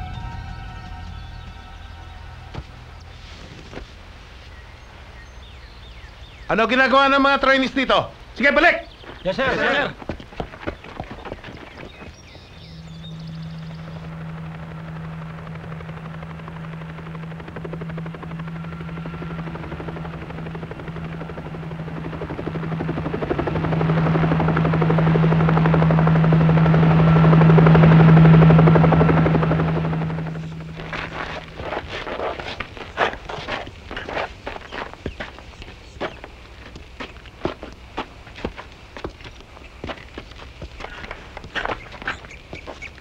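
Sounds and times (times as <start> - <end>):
helicopter rotor chop: 6.6 - 43.0.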